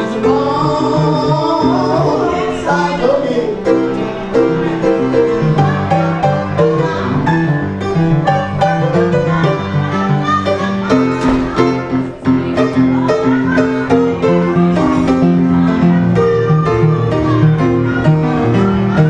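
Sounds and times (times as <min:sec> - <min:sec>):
upright piano playing: 0:00.0 - 0:19.0.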